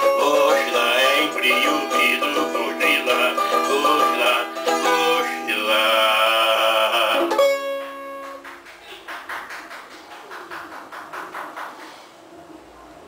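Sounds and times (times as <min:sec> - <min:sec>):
cavaquinho strumming: 0:00.0 - 0:08.7.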